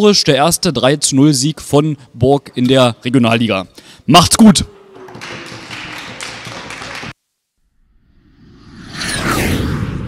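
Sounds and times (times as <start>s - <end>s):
room noise: 2.3s - 7.8s.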